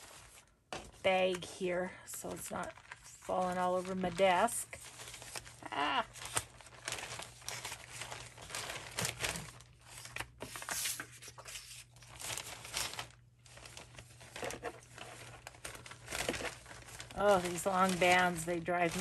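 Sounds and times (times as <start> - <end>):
paper rustling and crinkling: 0.0 - 19.0.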